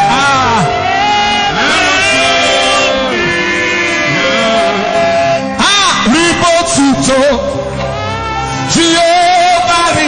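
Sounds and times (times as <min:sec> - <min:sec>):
praise music accompaniment: 0:00.0 - 0:10.0.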